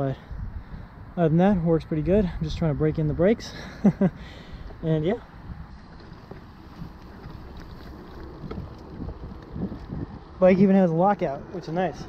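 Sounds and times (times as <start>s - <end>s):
wind noise on microphone: 0.0s - 3.4s, 4.2s - 12.0s
bike tyre rumble: 3.9s - 12.0s.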